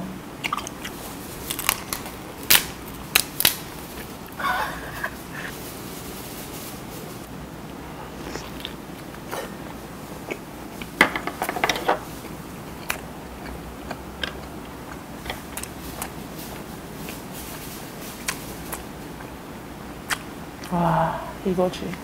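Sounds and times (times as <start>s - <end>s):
chewing with crackling clicks: 0.4s - 4.4s, 12.2s - 17.2s, 20.0s - 20.8s
lobster shell cracking: 1.5s - 4.2s.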